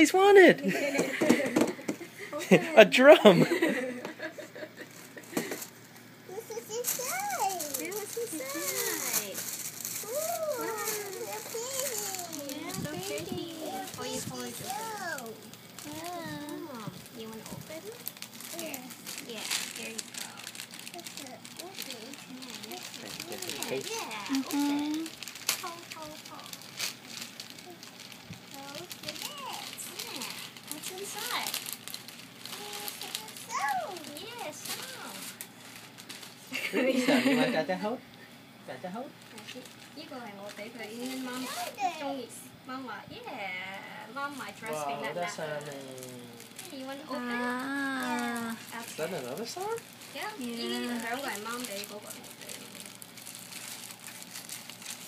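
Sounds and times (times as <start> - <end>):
plastic bag crinkling: 4.8 - 37.6, 39.2 - 42.2, 44.3 - 55.0
child speaking: 6.3 - 9.4, 10.0 - 19.4, 20.9 - 26.6, 27.6 - 27.9, 28.5 - 31.4, 32.6 - 35.2, 41.1 - 42.5, 46.6 - 48.7, 50.2 - 51.4.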